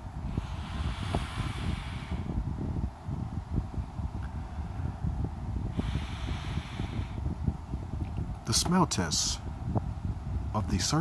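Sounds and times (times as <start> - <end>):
handling noise rumble: 0.0 - 11.0
person sniffing hard: 0.4 - 2.3, 5.8 - 7.2.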